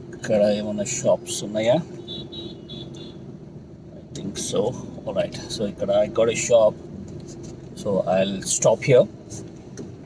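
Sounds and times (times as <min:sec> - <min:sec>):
car engine hum from cabin: 0:00.0 - 0:10.0.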